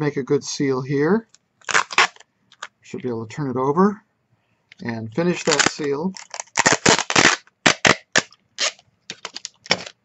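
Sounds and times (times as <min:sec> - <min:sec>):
adhesive tape ripping off roll: 0:01.6 - 0:02.2, 0:05.3 - 0:10.0.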